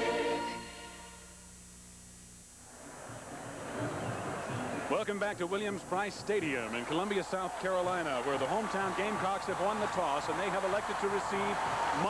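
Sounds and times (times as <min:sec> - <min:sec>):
choir jingle: 0:00.0 - 0:01.2
low steady hum: 0:00.0 - 0:06.7
stadium crowd noise: 0:02.7 - 0:12.0.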